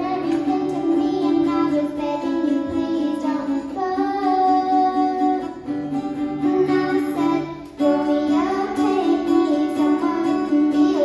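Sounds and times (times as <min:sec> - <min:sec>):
acoustic guitar strumming: 0:00.0 - 0:11.0
girl singing: 0:00.0 - 0:11.0.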